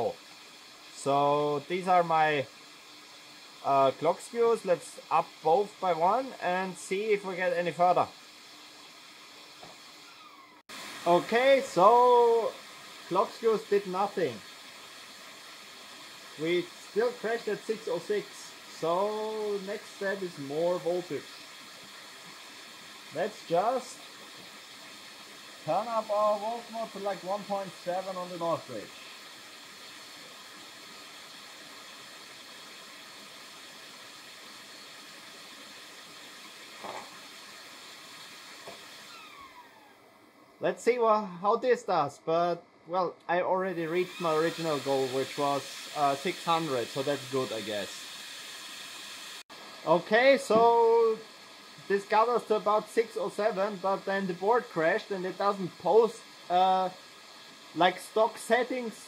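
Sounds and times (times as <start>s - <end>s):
steady fan noise: 0.0s - 59.0s
high whining tones: 38.6s - 40.2s.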